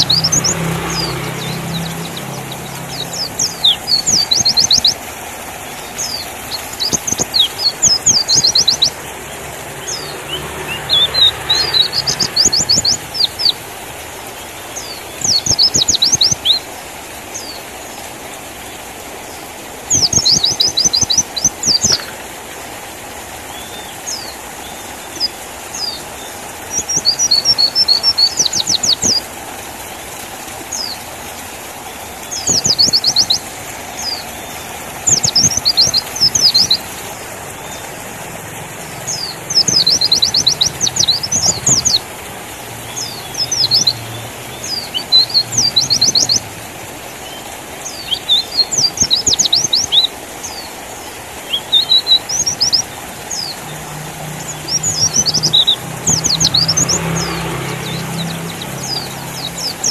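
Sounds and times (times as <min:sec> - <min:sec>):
bird chirping rapidly: 0:00.0 - 0:13.6, 0:14.4 - 0:17.6, 0:19.9 - 0:22.2, 0:25.0 - 0:29.3, 0:32.2 - 0:38.1, 0:38.8 - 0:42.2, 0:42.8 - 0:46.5, 0:47.2 - 0:59.9.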